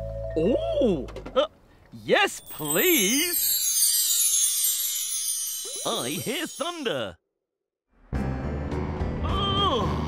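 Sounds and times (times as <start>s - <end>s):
bell-like chimes jingle: 2.3s - 7.2s.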